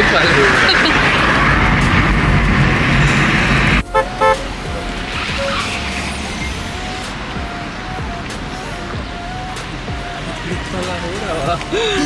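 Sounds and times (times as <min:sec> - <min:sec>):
road and engine noise in car: 0:00.0 - 0:12.0
street traffic: 0:00.0 - 0:12.0
car horn toots: 0:03.8 - 0:09.5.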